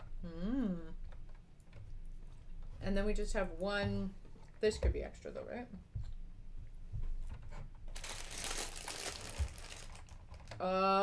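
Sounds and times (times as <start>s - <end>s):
plastic bag crinkling: 7.9s - 10.6s.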